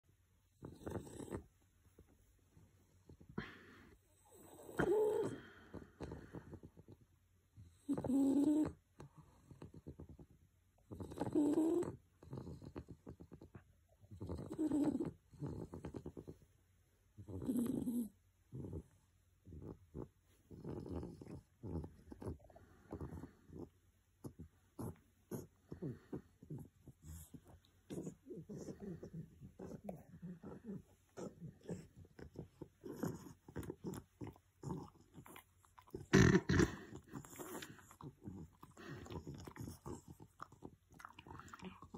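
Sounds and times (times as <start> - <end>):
dog snoring: 0.5 - 1.5, 4.1 - 7.0, 7.6 - 16.4, 17.2 - 41.9
dog grunt: 24.3 - 41.9.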